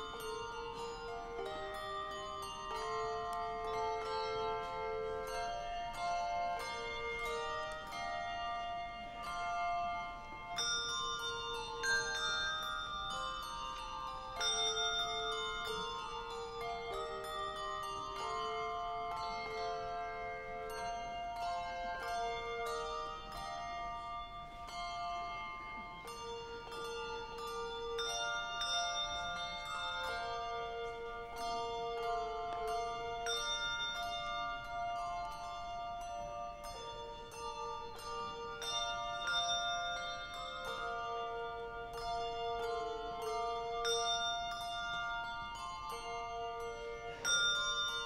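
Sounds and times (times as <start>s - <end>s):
handbell choir playing slow melody: 0.0s - 48.0s.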